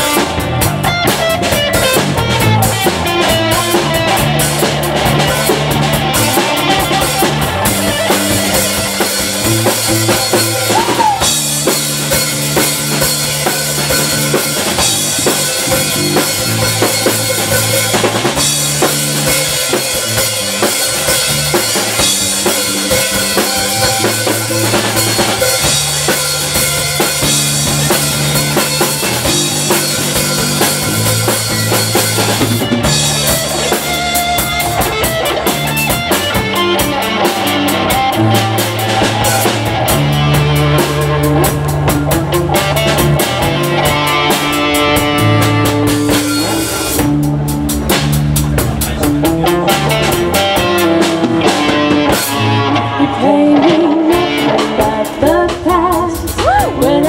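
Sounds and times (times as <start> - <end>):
drum kit: 0.0 - 57.0
electric guitar: 0.0 - 57.0
walking bass line: 0.0 - 57.0.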